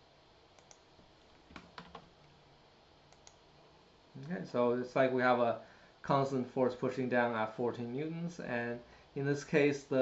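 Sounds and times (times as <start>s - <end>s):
computer keyboard and mouse clicks: 0.6s - 2.1s, 3.1s - 3.4s.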